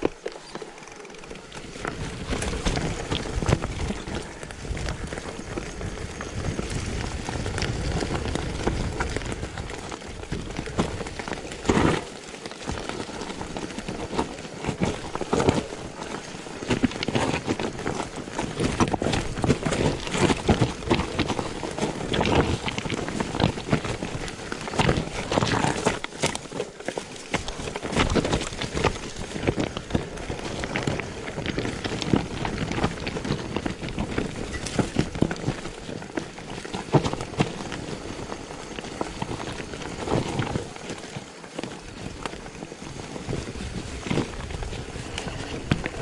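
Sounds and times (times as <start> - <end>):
bike knocking and rattling: 0.0 - 46.0
bike tyres crunching over stones: 0.0 - 46.0
steady rushing noise: 0.0 - 46.0.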